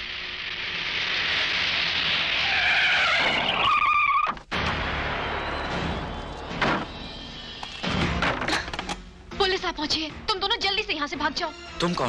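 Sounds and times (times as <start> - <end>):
tyres squealing in a skid: 0.6 - 4.4.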